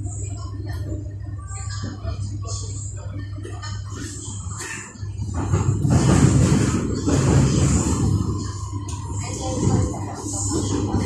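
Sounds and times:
train rumbling on track: 0.0 - 11.0.

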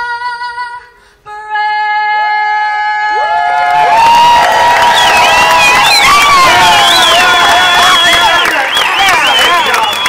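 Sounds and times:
crowd cheering and whistling: 3.2 - 10.0
crowd applause: 3.3 - 10.0.

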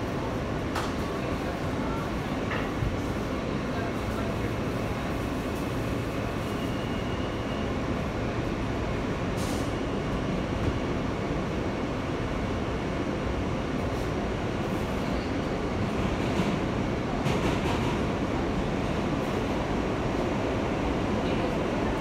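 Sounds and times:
subway car rumbling on rails: 0.0 - 22.0.

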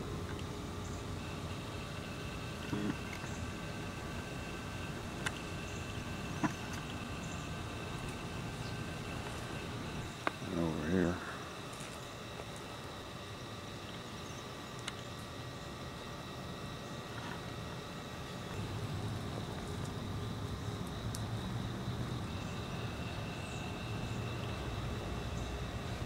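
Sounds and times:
faint high whine: 0.0 - 26.0
outdoor background rumble: 0.0 - 26.0.

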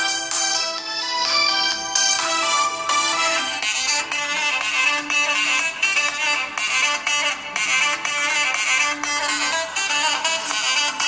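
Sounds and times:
instrumental music from phone speaker: 0.0 - 11.0.

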